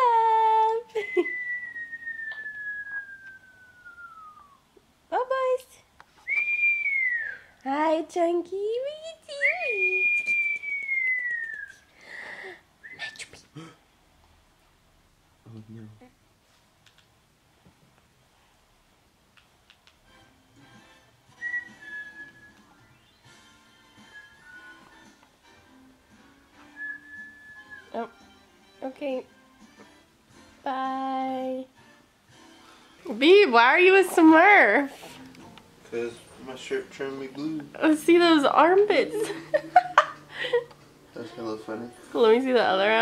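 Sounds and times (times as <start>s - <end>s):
person whistling descending note: 1.0s - 4.6s, 6.2s - 7.5s, 9.4s - 11.9s, 21.4s - 23.2s, 24.0s - 25.0s, 26.6s - 28.0s
soft background music: 19.9s - 43.0s.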